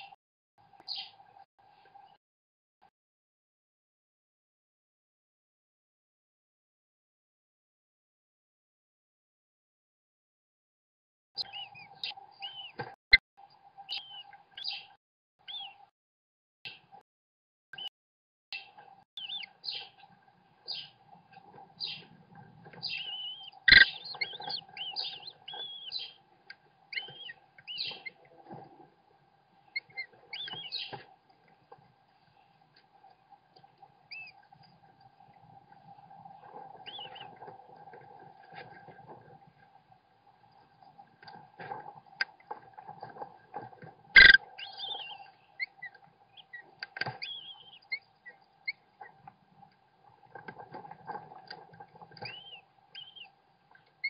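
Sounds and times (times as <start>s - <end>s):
nestlings begging calls: 22.8s - 26.2s, 26.9s - 28.2s, 29.8s - 31.0s, 34.1s - 34.3s, 36.8s - 37.3s, 44.2s - 46.6s, 47.2s - 48.0s, 52.2s - 53.3s.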